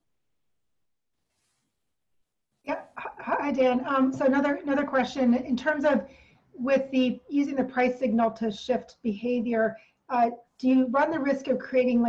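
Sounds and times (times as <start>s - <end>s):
person speaking: 2.7s - 6.0s, 6.6s - 12.0s.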